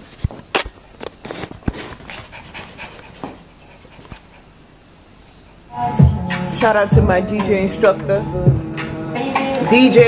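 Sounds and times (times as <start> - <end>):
small dog panting: 1.9 - 4.8
music: 5.7 - 10.0.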